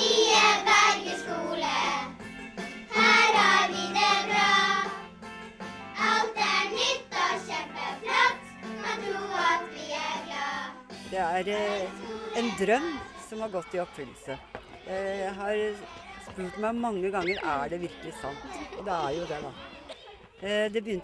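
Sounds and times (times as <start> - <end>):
children singing in unison: 0.0 - 2.2, 2.9 - 5.1, 6.0 - 16.8.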